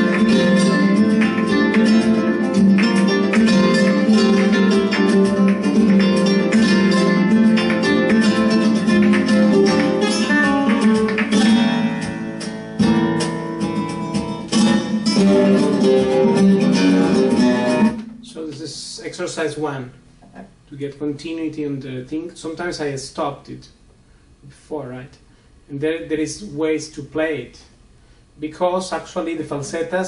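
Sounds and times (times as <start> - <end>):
flamenco guitar: 0.0 - 18.6.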